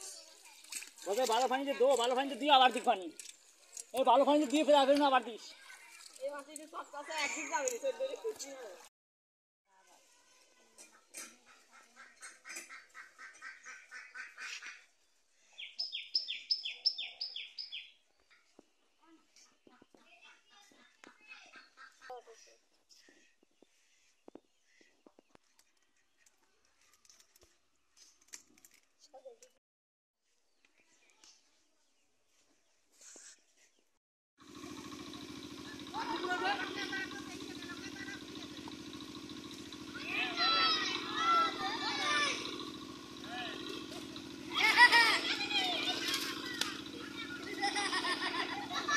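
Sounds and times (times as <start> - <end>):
small engine running: 0.1 - 8.9, 34.4 - 48.9
birds calling: 10.9 - 26.4, 34.6 - 48.9.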